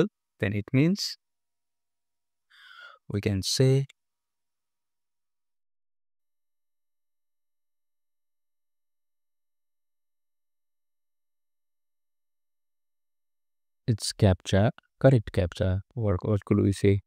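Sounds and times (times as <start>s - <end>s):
person speaking: 13.9s - 17.0s.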